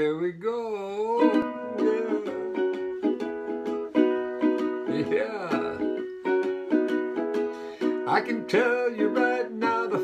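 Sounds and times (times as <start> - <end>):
ukulele strumming: 1.0 - 10.0.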